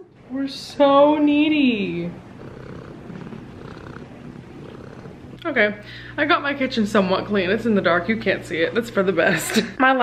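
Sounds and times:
cat purring: 0.0 - 9.5.

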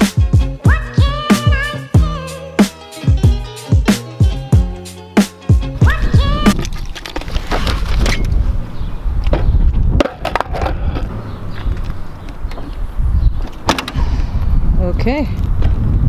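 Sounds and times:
skateboard wheels rolling on concrete: 5.2 - 16.0
skateboard clacks: 10.0 - 11.1.

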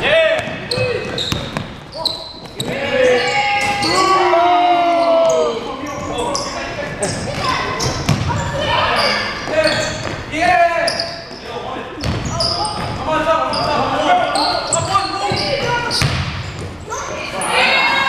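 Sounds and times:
players calling out: 0.0 - 16.2
basketball bouncing on court: 0.4 - 1.8, 7.2 - 8.7, 12.0 - 13.0, 14.8 - 16.8.

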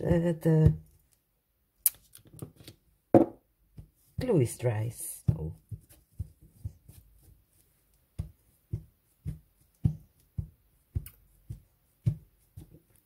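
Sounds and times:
hands patting fabric: 3.6 - 13.0.

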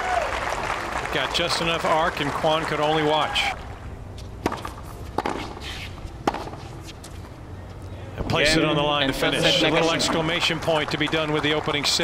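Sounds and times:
low stadium ambience: 0.0 - 12.0
racket hitting tennis ball: 4.4 - 6.9.

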